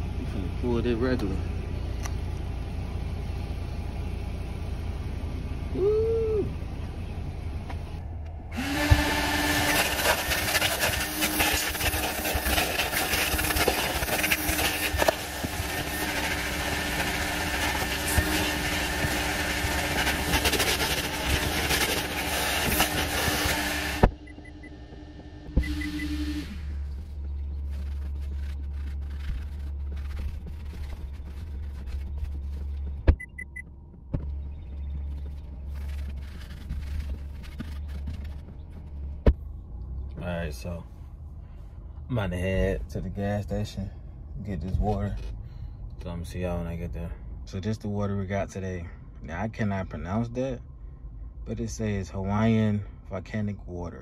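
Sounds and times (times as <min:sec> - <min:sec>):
vacuum motor hum: 0:07.0 - 0:40.2
vacuum suction rush: 0:08.0 - 0:27.0.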